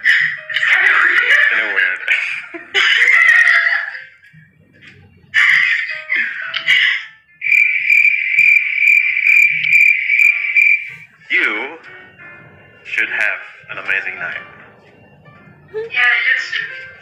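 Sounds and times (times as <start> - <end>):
cricket-like chirring: 7.4 - 11.1
short noisy bursts: 7.4 - 11.1.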